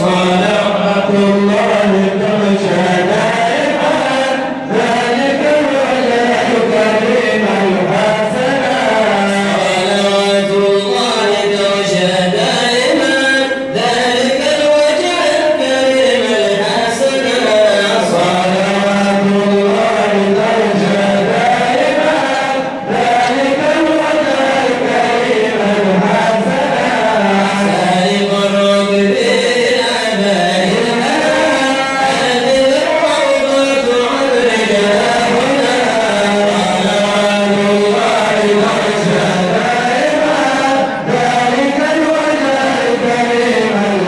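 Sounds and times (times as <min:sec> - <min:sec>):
men chanting devotional song: 0:00.0 - 0:44.0.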